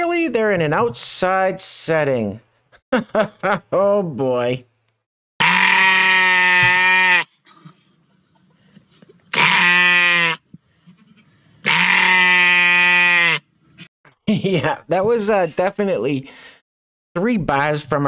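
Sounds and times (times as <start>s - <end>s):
sheep bleating: 5.4s - 7.4s, 9.3s - 10.5s, 11.6s - 13.5s.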